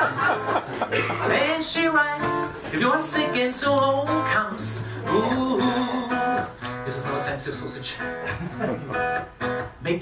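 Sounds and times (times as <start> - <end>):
acoustic guitar strummed: 0.0 - 9.9
man singing: 0.9 - 6.6.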